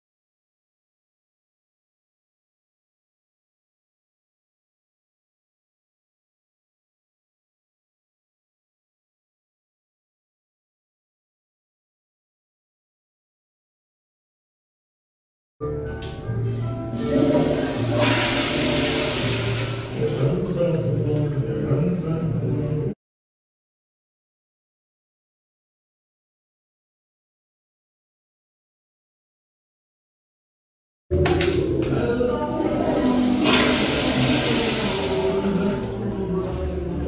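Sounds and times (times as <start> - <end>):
toilet flushing: 16.8 - 22.8, 31.2 - 37.0.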